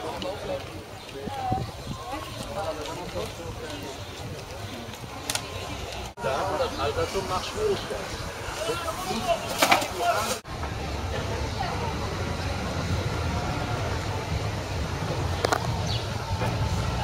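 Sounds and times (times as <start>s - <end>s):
indistinct voices: 0.0s - 17.0s.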